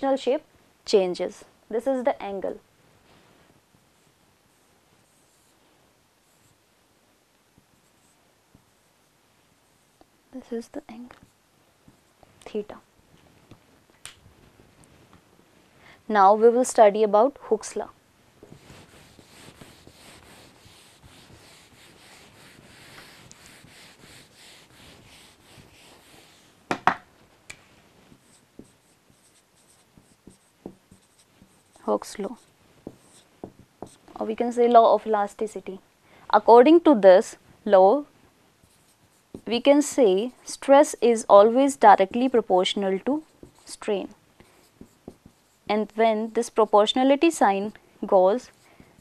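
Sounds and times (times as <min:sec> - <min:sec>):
room hiss: 0:00.0 - 0:49.0
marker strokes on whiteboard: 0:03.8 - 0:05.6, 0:06.2 - 0:06.6, 0:07.6 - 0:09.0, 0:18.4 - 0:26.7, 0:28.0 - 0:34.7, 0:38.6 - 0:40.6, 0:42.0 - 0:49.0.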